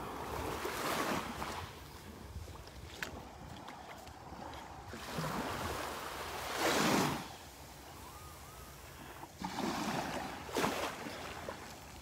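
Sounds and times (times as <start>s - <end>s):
small waves washing on sandy beach: 0.0s - 12.0s.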